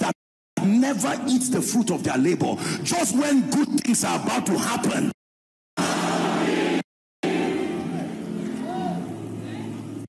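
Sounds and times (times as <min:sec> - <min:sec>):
soft sustained keyboard chords: 0:07.3 - 0:10.0.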